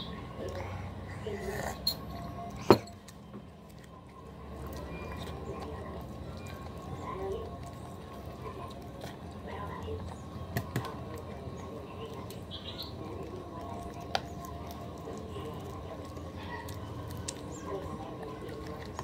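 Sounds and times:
chewing and mouth noises: 0:00.4 - 0:19.0.

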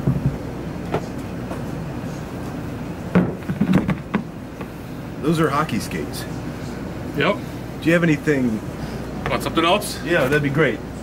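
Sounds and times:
bowling alley rumble: 0:00.0 - 0:04.8.

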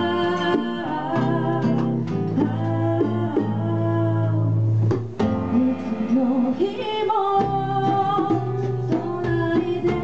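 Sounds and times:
guitar accompaniment: 0:00.0 - 0:10.0.

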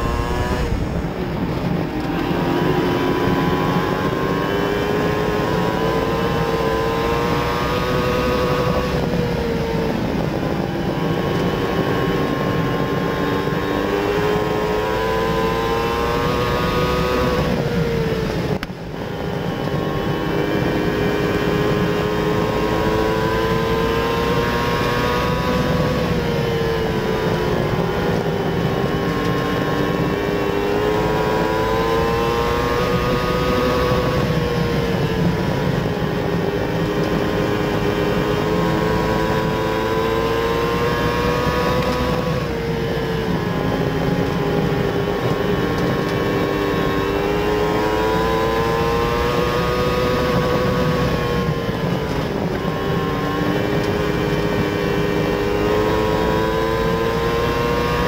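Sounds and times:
race car engine revving: 0:00.0 - 0:18.6, 0:19.2 - 0:58.0.

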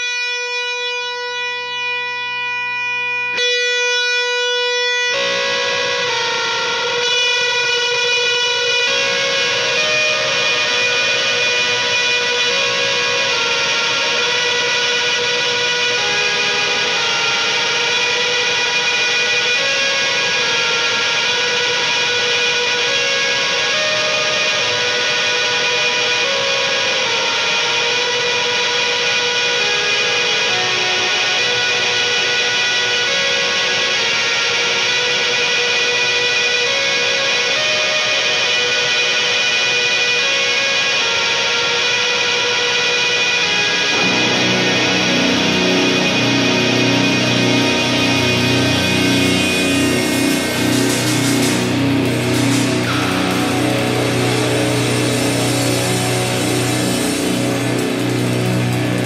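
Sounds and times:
distorted electric guitars: 0:00.0 - 0:59.0
single held note: 0:43.9 - 0:59.0.

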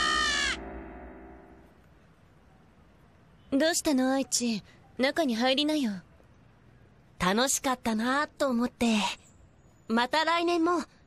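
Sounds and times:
cartoon character screaming: 0:00.0 - 0:00.6.

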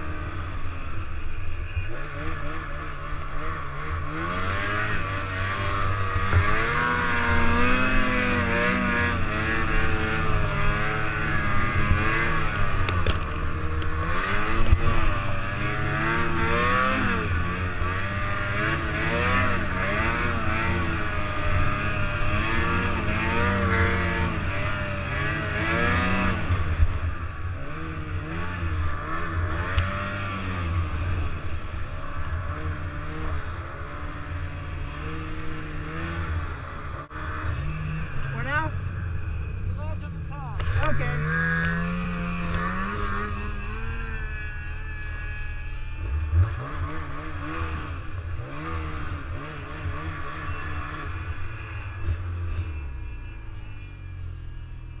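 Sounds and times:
snowmobile engine revving: 0:00.0 - 0:55.0.

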